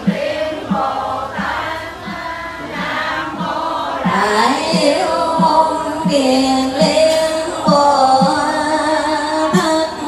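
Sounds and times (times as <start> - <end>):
low drum beat: 0.0 - 8.6
congregation chanting: 0.0 - 10.0.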